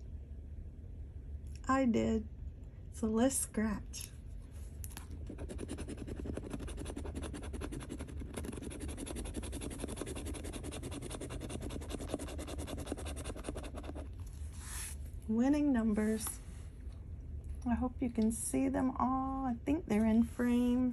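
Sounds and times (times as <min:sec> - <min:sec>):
coin scratching lottery ticket: 0:05.3 - 0:14.1.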